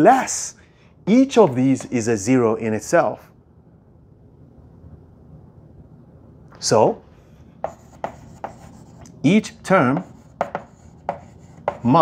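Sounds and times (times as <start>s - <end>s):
chalk tapping on blackboard: 1.5s - 2.0s, 7.6s - 9.2s, 9.8s - 12.0s.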